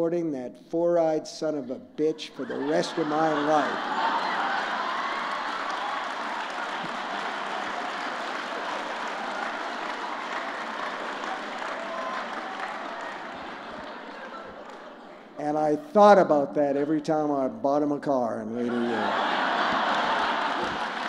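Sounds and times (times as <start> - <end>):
crowd noise: 2.0 - 17.6, 18.4 - 21.0
audience applauding: 2.5 - 15.4, 18.7 - 21.0.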